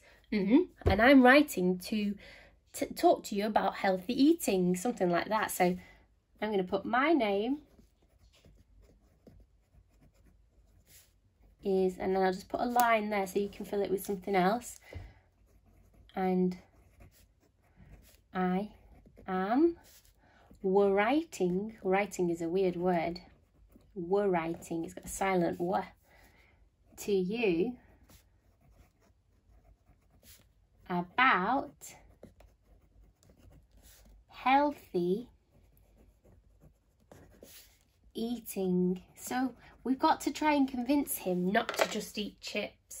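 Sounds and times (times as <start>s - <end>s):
pen scratching on paper: 7.6s - 14.6s, 15.3s - 26.0s, 27.9s - 34.7s, 35.3s - 38.0s.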